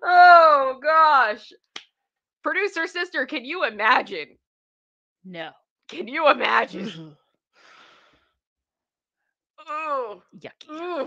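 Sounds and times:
woman murmuring: 0:06.6 - 0:07.1.

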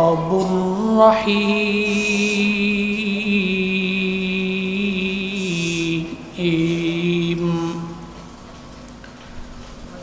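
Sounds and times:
man chanting melodically: 0:00.0 - 0:08.1.

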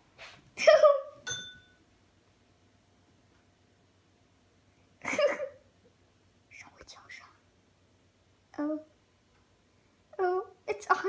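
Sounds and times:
faint whisper: 0:06.5 - 0:07.5.

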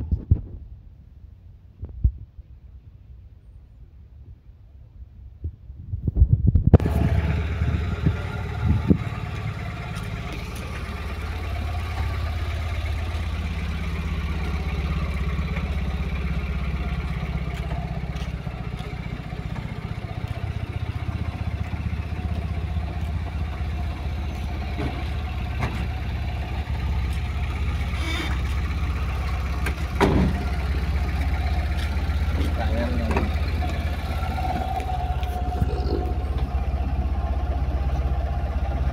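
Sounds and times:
pickup engine idling: 0:06.8 - 0:38.9.

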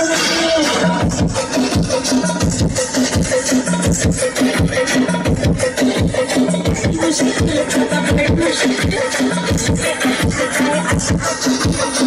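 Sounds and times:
dance music with fast beat: 0:00.0 - 0:12.0.

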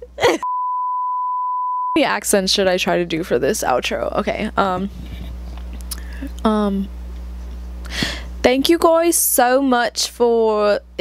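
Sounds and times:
high electronic beep: 0:00.4 - 0:02.0.

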